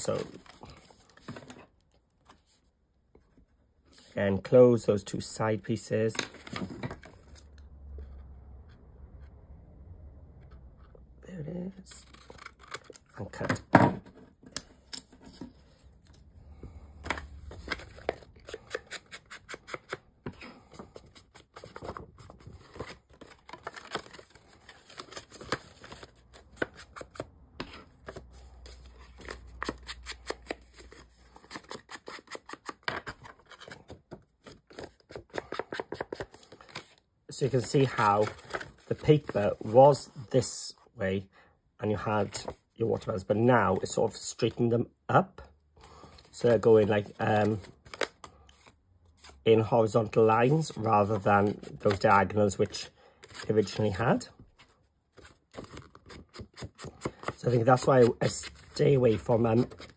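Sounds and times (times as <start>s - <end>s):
card paper being folded: 17.5s - 39.8s, 55.2s - 59.9s.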